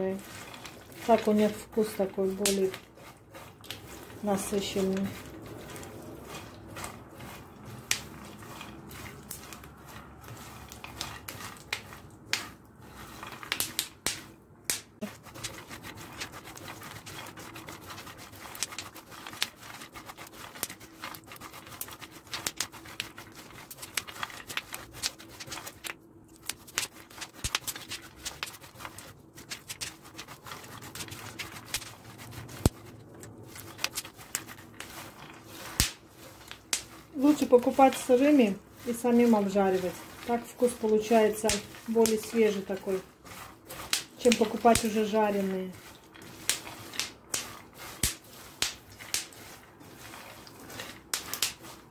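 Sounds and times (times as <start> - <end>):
spatula scraping a pan: 0.0 - 14.4, 15.0 - 51.9
nuts crackling in a hot pan: 0.0 - 51.9.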